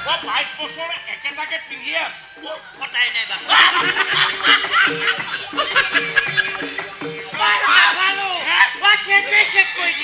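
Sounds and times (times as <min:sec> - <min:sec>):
background music with held notes: 0:00.0 - 0:10.0
loud laughter: 0:03.4 - 0:07.1.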